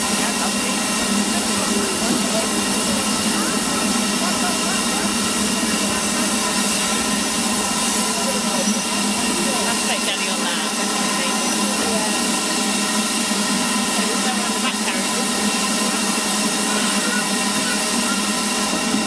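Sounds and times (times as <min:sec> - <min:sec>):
locomotive steam hissing: 0:00.0 - 0:19.0
railway coaches rolling: 0:00.0 - 0:19.0.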